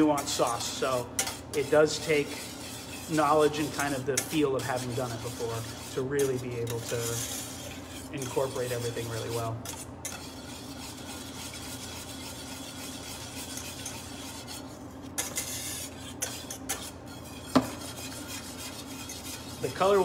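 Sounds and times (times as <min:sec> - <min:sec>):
wire whisk scraping a pan: 0:00.0 - 0:20.0.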